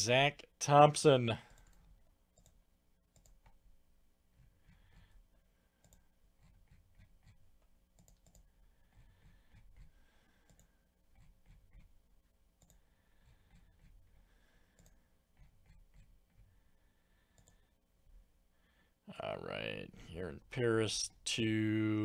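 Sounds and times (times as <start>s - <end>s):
faint computer mouse clicks: 2.4s - 3.6s, 5.8s - 6.0s, 8.0s - 8.5s, 12.6s - 12.8s, 14.7s - 15.0s, 17.3s - 17.6s.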